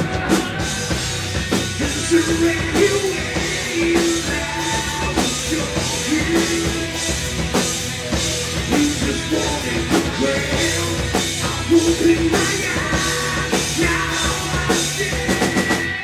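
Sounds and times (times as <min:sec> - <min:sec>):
bass guitar: 0:00.0 - 0:16.0
distorted electric guitars: 0:00.0 - 0:16.0
drum kit beat: 0:00.0 - 0:16.0
person singing: 0:01.7 - 0:07.2, 0:08.0 - 0:16.0.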